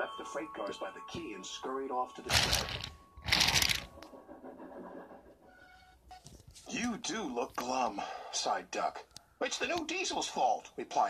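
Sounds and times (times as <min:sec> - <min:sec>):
toy train scraping rattle: 0:02.3 - 0:03.9
toy wheels rumbling on plastic: 0:02.3 - 0:03.9.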